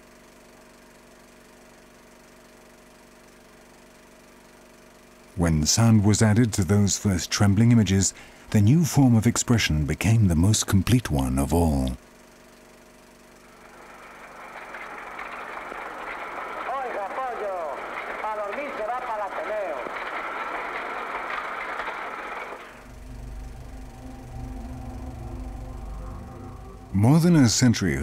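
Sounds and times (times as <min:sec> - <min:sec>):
low steady hum: 0:00.0 - 0:28.0.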